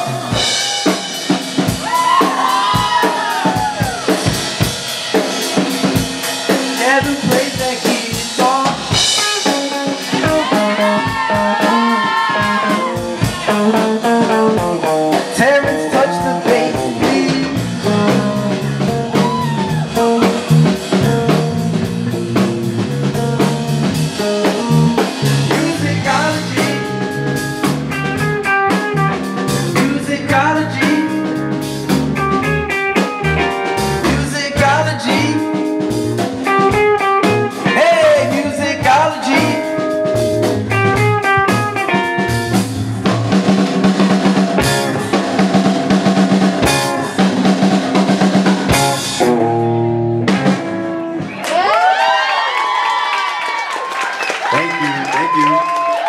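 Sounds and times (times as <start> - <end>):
busy electric guitar line: 0.0 - 51.9
live funk band playing: 0.0 - 52.1.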